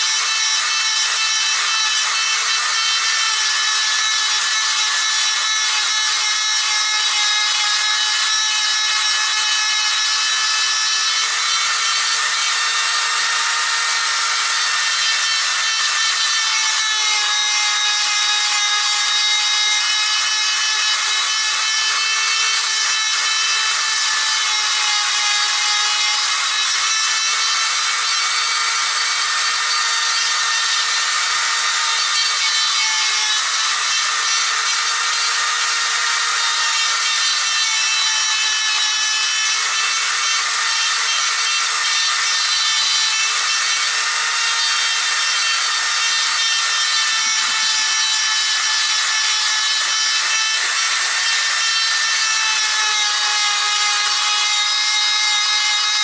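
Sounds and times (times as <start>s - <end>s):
electric grinder grinding wood: 0.0s - 56.0s.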